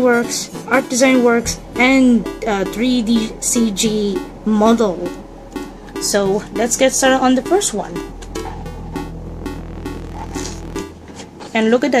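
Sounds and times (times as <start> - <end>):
soft background music: 0.0 - 11.0
low hum: 1.4 - 11.2.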